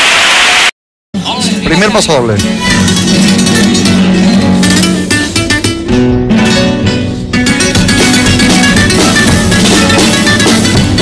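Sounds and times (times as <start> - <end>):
guitars strumming rapidly: 1.7 - 11.0.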